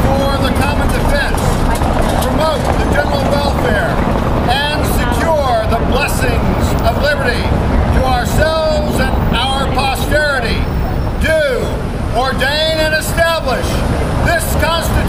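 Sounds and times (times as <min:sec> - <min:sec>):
man reciting: 0:00.0 - 0:01.5, 0:02.3 - 0:15.0
city traffic rumble: 0:00.0 - 0:15.0.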